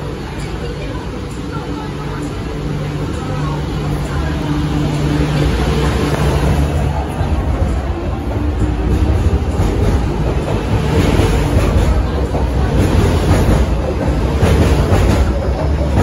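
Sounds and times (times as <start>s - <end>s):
train low hum: 0.0s - 16.0s
train wheels rumbling: 0.0s - 16.0s.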